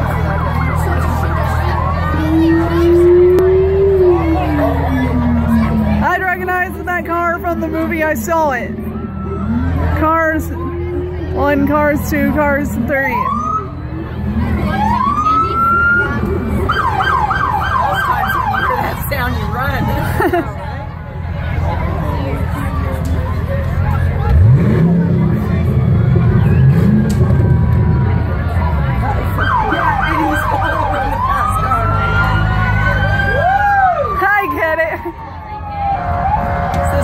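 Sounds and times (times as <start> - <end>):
crowd rumble: 0.0 - 37.0
engine rumble: 0.0 - 37.0
police siren yelping: 13.0 - 19.1, 29.3 - 37.0.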